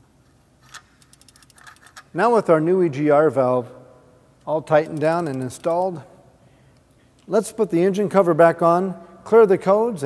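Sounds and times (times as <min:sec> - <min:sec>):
ratchet wrench clicking: 0:00.7 - 0:02.0.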